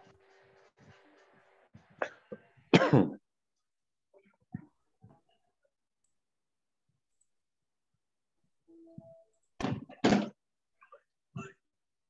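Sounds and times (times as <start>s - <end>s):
person coughing: 2.0s - 3.2s.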